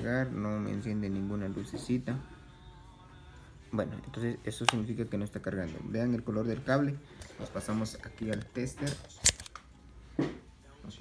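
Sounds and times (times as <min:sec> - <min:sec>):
sharp click: 0:08.3 - 0:09.7.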